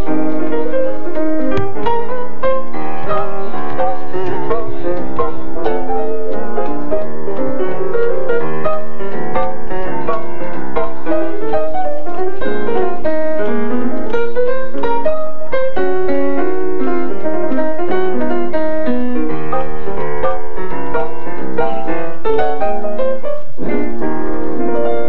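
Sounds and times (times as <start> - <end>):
grand piano playing: 0.0 - 25.0.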